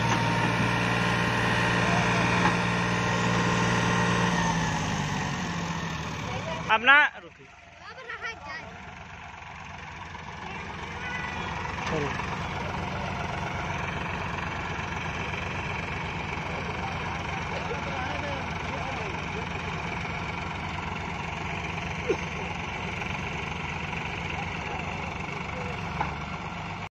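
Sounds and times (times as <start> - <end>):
tractor diesel engines running: 0.0 - 26.9.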